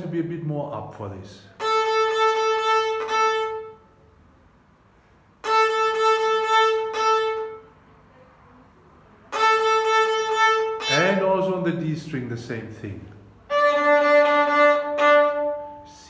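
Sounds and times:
violin bowing repeated note: 1.6s - 3.9s, 5.4s - 7.7s, 9.3s - 11.3s, 13.5s - 16.0s.

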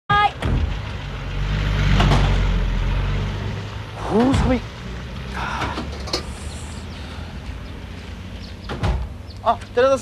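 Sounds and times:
vehicle engine rumble: 0.1s - 10.0s.

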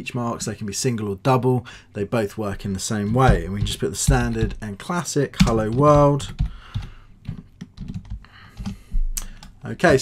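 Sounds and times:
computer keyboard typing: 5.4s - 10.0s.

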